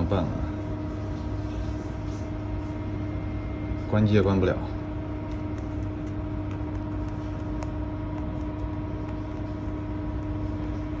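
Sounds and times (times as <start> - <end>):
room hum with constant tones: 0.0 - 11.0.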